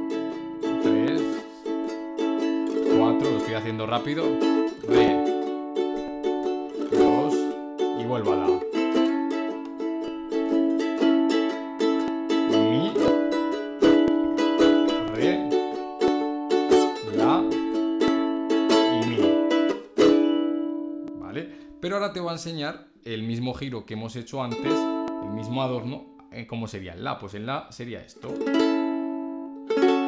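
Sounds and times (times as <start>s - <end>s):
ukulele strumming blues: 0.0s - 21.8s, 24.5s - 26.3s, 28.2s - 30.0s.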